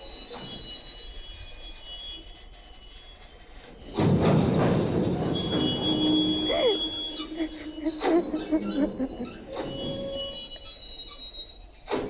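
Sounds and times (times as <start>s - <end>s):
train passing close by: 0.0s - 12.0s.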